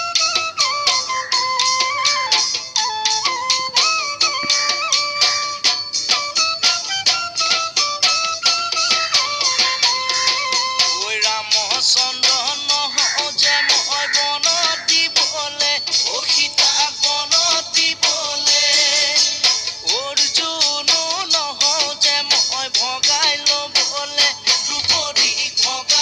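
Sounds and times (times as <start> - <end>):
person singing: 8.8 - 26.0.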